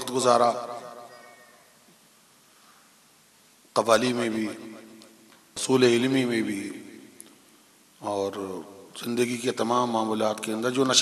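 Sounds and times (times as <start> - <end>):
echo of man's amplified speech: 0.0 - 1.5, 3.7 - 7.3, 8.0 - 11.0
faint high squeak: 1.0 - 1.8.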